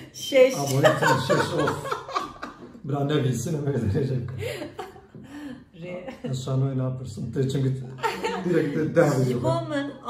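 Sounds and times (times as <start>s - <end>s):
woman speaking: 0.0s - 1.2s, 5.8s - 6.2s, 8.1s - 10.0s
woman laughing: 0.6s - 2.7s, 8.0s - 9.6s.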